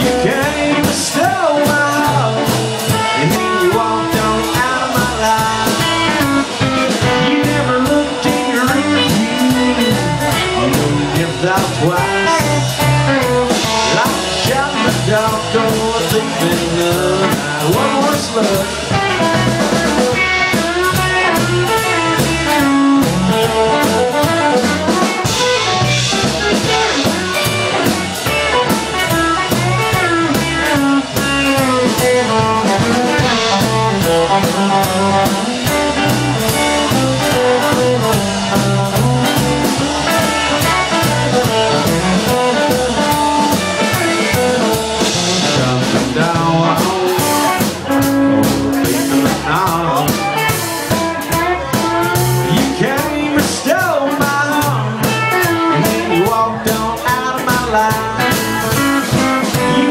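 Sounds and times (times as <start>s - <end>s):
country band playing: 0.0s - 59.9s
drum kit steady beat: 0.0s - 59.9s
guitar melody: 0.0s - 59.9s.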